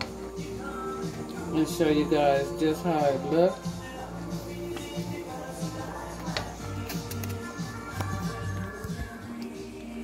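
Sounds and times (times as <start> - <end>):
background music with bass line: 0.0 - 10.0
utensil clicking against metal pot: 6.2 - 8.1.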